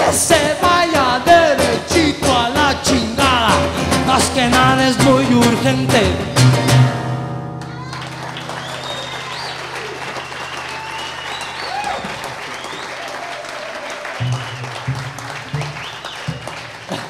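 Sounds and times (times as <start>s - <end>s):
acoustic guitar and upright bass: 0.0s - 9.5s, 14.2s - 17.0s
audience applauding and cheering: 7.6s - 17.0s
low plucked notes: 14.3s - 16.8s.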